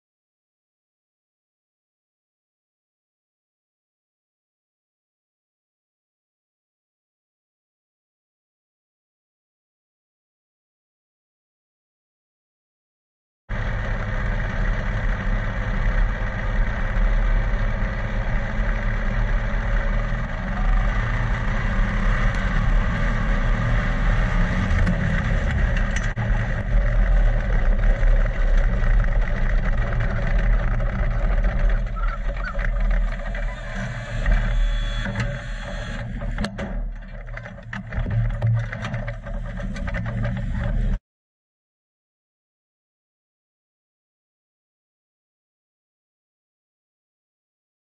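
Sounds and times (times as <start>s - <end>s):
race car engine running: 13.5s - 41.0s
knocks and rattles: 22.0s - 41.0s.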